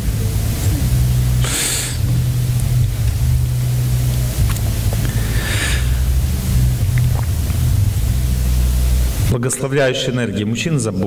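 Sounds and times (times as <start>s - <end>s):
steady low hum: 0.0s - 10.3s.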